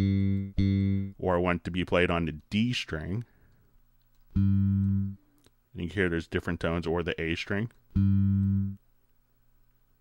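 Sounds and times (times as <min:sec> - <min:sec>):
electric bass note: 0:00.0 - 0:01.2, 0:04.4 - 0:05.2, 0:08.0 - 0:08.8.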